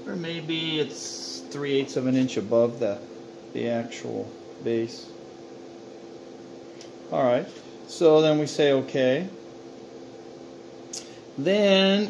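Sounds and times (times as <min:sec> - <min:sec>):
mechanical hum of equipment: 0:00.0 - 0:12.0.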